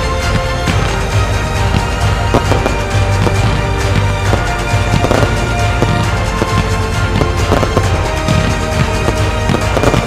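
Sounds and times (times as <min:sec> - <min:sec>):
fireworks bursting: 0:00.0 - 0:10.0.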